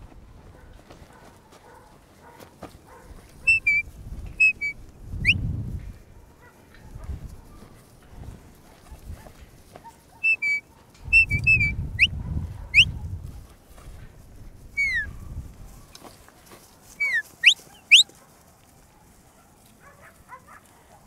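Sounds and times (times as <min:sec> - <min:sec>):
person whistling commands: 0:10.2 - 0:12.1, 0:14.8 - 0:15.1.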